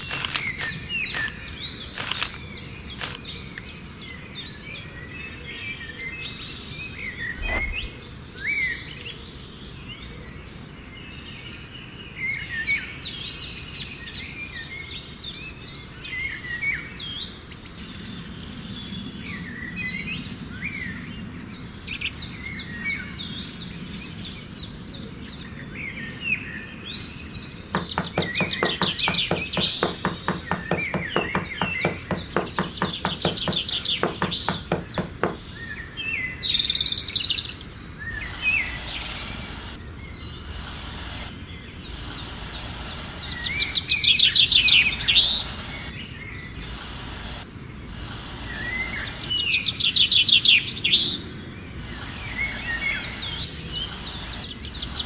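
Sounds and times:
fast run of clicks: 0.0s - 3.4s, 27.8s - 35.5s
songbirds chirping: 0.0s - 55.0s.

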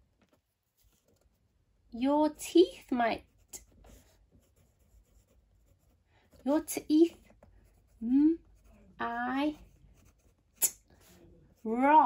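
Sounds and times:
pen scratching on paper: 3.2s - 12.0s.

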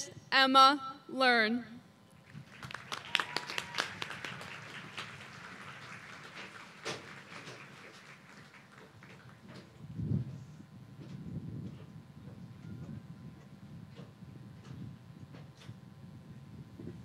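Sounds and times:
audience applauding: 2.4s - 9.5s.

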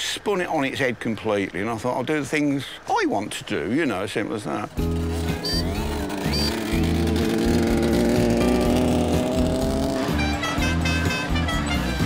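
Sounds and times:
background music: 4.7s - 12.0s
small engine running: 4.8s - 10.5s.

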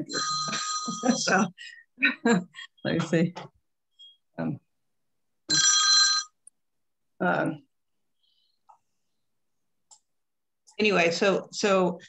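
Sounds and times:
electronic ringing tone: 0.0s - 1.4s.

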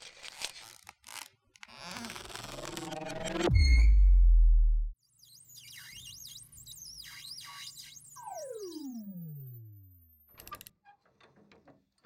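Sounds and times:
warbling synthesized tones: 5.3s - 10.3s.

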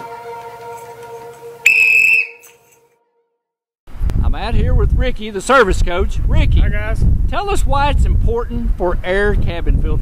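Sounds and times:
whistle blast: 1.6s - 2.8s.

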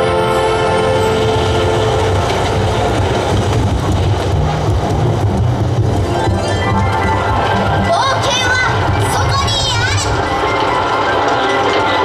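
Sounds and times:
held music notes: 0.0s - 12.0s
deep rumbling with crackle: 1.1s - 12.0s.

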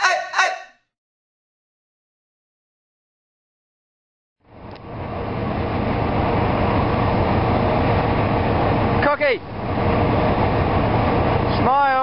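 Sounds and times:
person's voice: 0.0s - 0.7s.

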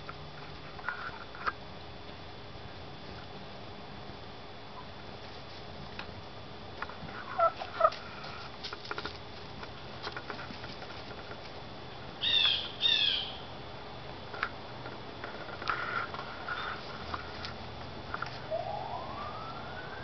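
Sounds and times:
chickens calling: 7.0s - 9.2s
chicken squawks: 7.2s - 8.4s.

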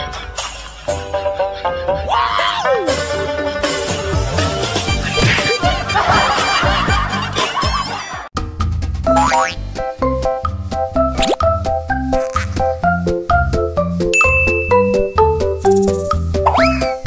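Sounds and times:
bouncy children's music: 0.0s - 8.3s, 9.0s - 17.0s
cartoon sound effects: 9.1s - 9.6s, 16.5s - 17.0s.

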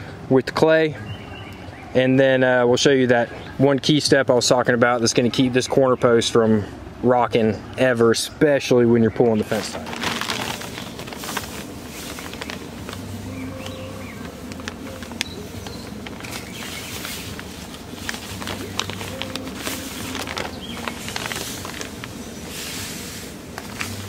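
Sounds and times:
plastic bag rustling and crinkling: 9.4s - 24.0s
sand pouring: 9.6s - 24.0s.

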